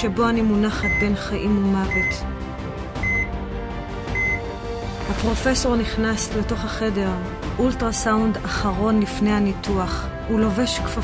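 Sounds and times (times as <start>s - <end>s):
soft background music: 0.0s - 11.0s
patient monitor beeping: 0.8s - 1.2s, 1.9s - 2.2s, 3.0s - 3.3s, 4.1s - 4.4s.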